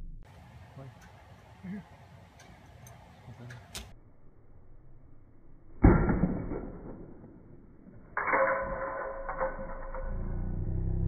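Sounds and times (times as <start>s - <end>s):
bow ringing: 8.0s - 10.9s.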